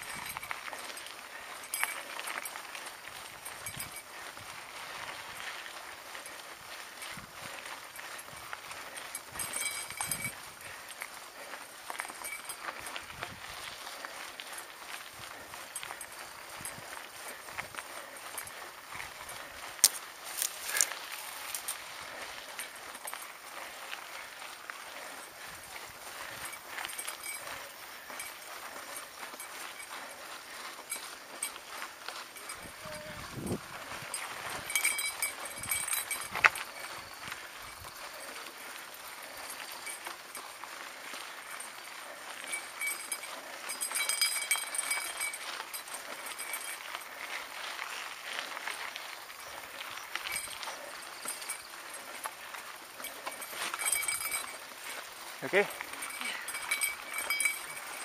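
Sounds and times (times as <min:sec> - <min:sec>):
bike rattling: 0:00.0 - 0:58.0
tyres crunching over dirt: 0:00.0 - 0:58.0.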